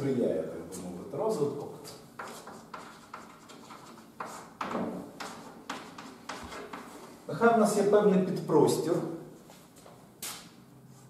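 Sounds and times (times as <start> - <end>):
chalk scratching on blackboard: 2.2 - 7.1.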